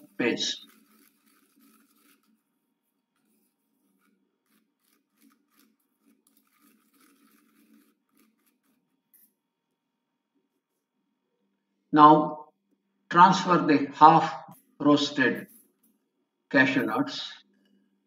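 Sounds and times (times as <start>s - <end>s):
metal spoon stirring in steel bowl: 0.0s - 9.2s.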